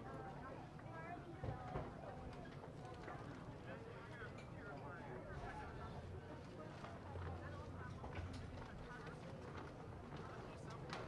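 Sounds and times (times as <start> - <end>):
voices murmuring in a hall: 0.0 - 11.0.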